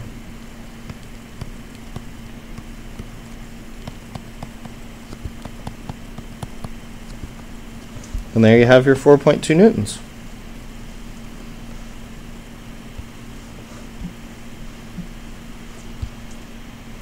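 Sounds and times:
low hum: 0.0s - 17.0s
stylus tapping on tablet screen: 0.8s - 7.5s.

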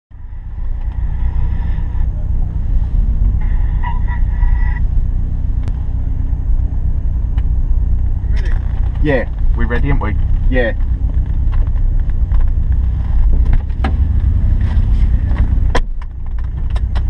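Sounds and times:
car engine idling: 0.1s - 17.0s.

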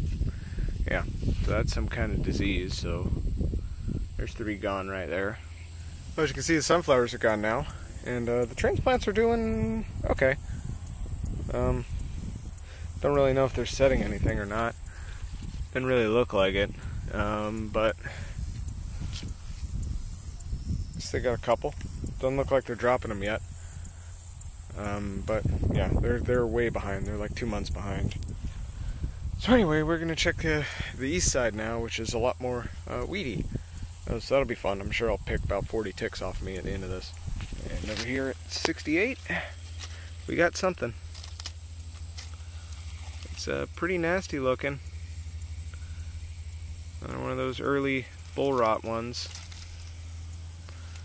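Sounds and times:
leaves rustling: 0.0s - 51.0s
low microphone rumble: 0.0s - 51.0s
steady high hiss: 0.0s - 51.0s.

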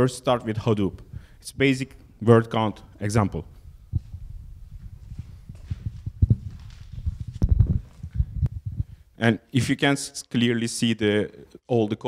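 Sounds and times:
microphone handling thumps: 3.5s - 9.0s.

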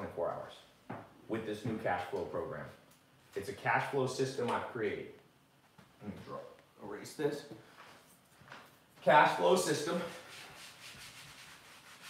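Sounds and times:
eraser scrubbing whiteboard: 9.6s - 12.0s.

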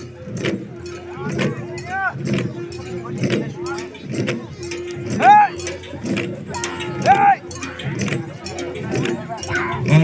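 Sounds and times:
crowd voices: 0.0s - 10.0s
drums being beaten: 0.0s - 10.0s.

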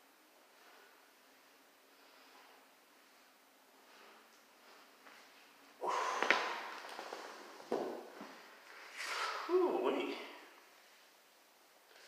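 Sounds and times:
rustling noise: 6.4s - 9.1s.

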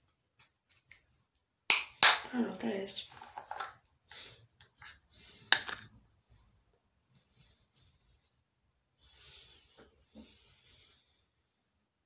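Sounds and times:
soft breath: 9.0s - 11.5s.

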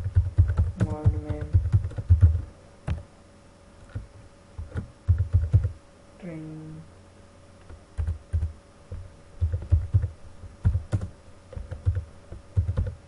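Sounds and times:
typing on computer keyboard: 0.0s - 2.4s, 4.6s - 5.7s, 8.0s - 8.5s, 9.4s - 12.0s, 12.6s - 13.0s.

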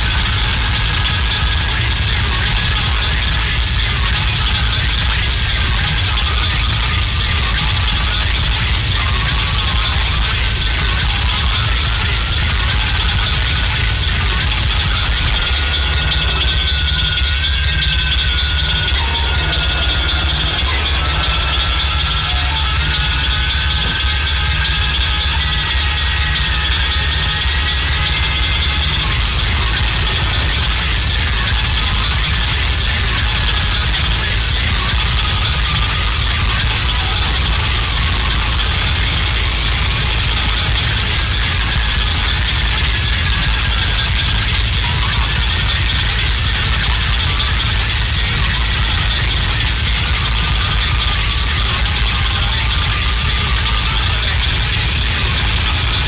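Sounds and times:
deep steady rumble: 0.0s - 50.6s.

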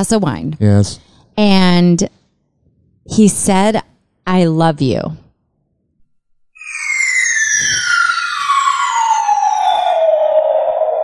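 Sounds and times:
falling bomb whistle: 6.6s - 11.0s.

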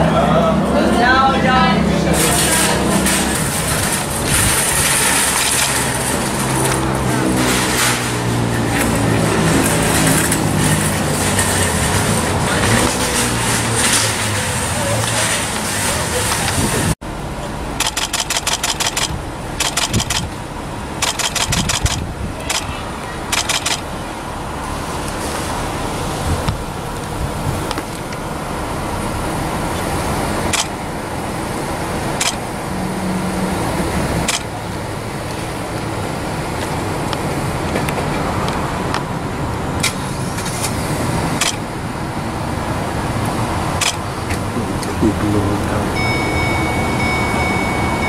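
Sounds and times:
car and traffic noise: 0.0s - 48.0s
camera shutter clicks: 17.8s - 20.3s, 21.0s - 22.7s, 23.3s - 23.8s, 30.5s - 30.8s, 32.2s - 32.4s, 34.3s - 34.5s, 41.4s - 41.6s, 43.8s - 44.0s.

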